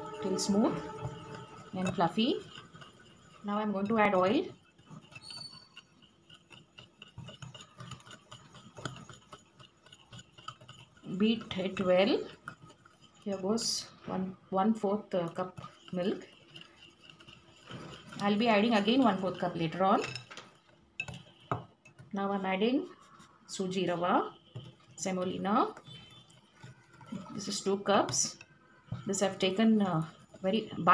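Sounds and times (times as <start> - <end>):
whisk clicking against glass bowl: 0.0 - 30.9.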